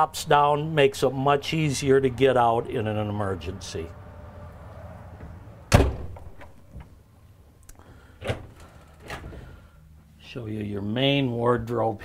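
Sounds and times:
window panel shutting with thud: 0:05.2 - 0:06.9
wooden cabinet door opening: 0:08.2 - 0:09.5.

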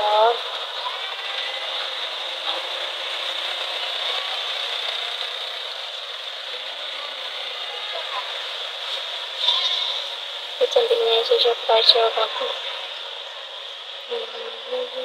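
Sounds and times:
steady background hiss: 0:00.0 - 0:15.0
faint wavering voice: 0:06.5 - 0:08.6, 0:09.4 - 0:12.9, 0:14.1 - 0:15.0.

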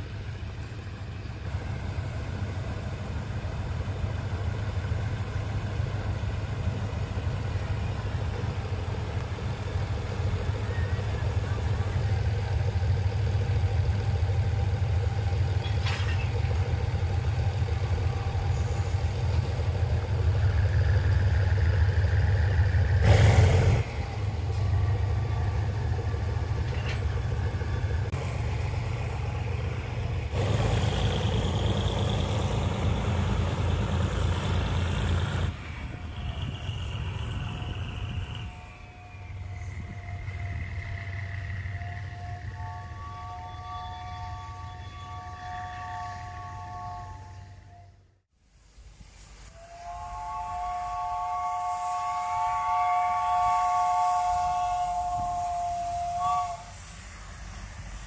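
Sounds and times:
diesel locomotive engine rumbling: 0:00.0 - 0:58.0.

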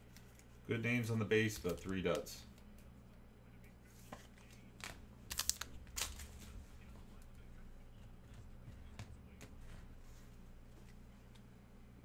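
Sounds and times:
card pack wrappers crackling: 0:01.5 - 0:02.3, 0:04.4 - 0:06.5.

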